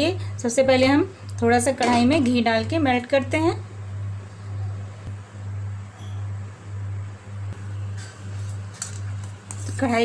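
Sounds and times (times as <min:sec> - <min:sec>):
woman speaking: 0:00.0 - 0:03.7, 0:09.6 - 0:10.0
induction cooktop electrical hum: 0:00.0 - 0:10.0.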